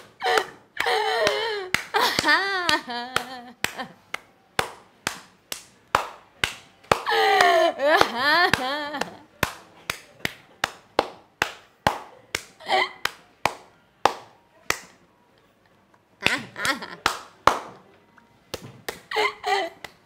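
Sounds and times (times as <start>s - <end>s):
hands clapping: 0.0s - 15.0s, 16.2s - 17.9s, 18.5s - 19.1s, 19.8s - 20.0s
woman laughing: 0.2s - 4.0s, 7.1s - 9.2s, 16.2s - 17.0s, 19.1s - 19.8s.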